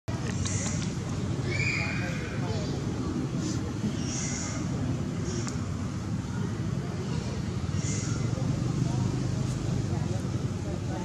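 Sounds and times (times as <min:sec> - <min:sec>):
low outdoor rumble: 0:00.1 - 0:11.0.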